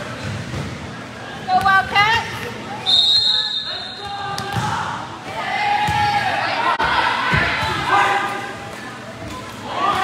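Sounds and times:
referee's whistle blast: 0:02.9 - 0:04.0.

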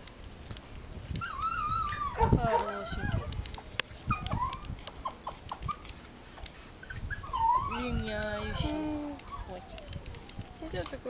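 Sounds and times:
dog whining: 0:01.2 - 0:03.3, 0:04.1 - 0:11.0.

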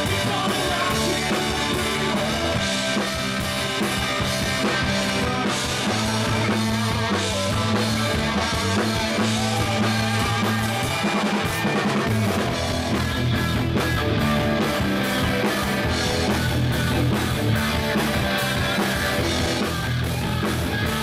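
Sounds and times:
drum kit beat: 0:00.0 - 0:21.0
electric guitars: 0:00.0 - 0:21.0.

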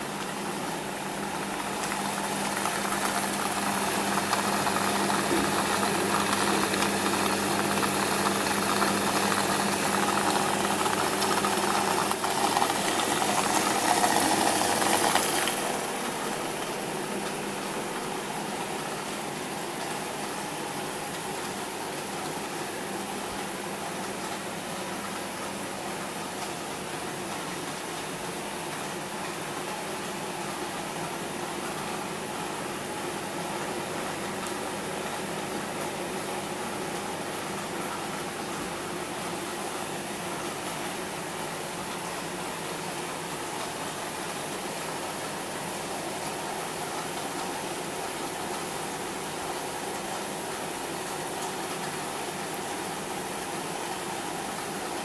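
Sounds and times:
aquarium air pump hum: 0:00.0 - 0:55.0.

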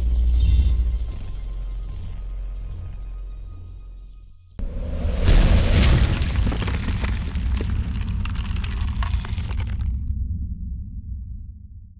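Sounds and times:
low explosion-like rumble: 0:04.9 - 0:11.4
crackling: 0:05.8 - 0:10.1.

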